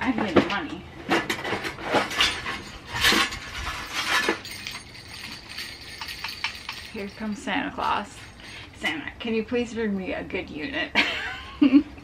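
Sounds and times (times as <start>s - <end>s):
decorations clinking in plastic tote: 2.1s - 8.8s.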